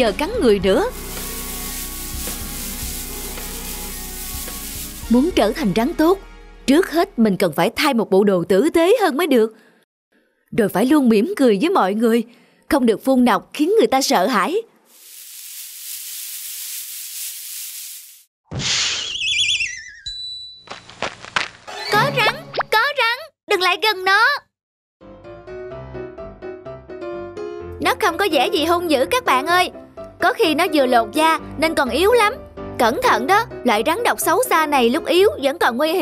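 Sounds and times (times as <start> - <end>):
soft background music: 0.0 - 7.5, 27.7 - 36.0
rustling hiss of snake: 0.9 - 5.1, 14.9 - 18.3
cartoon hit: 18.5 - 19.7
wobbling descending whistle: 18.8 - 20.5.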